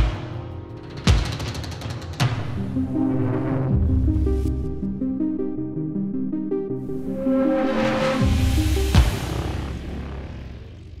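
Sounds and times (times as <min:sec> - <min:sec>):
electronic music: 0:00.0 - 0:11.0.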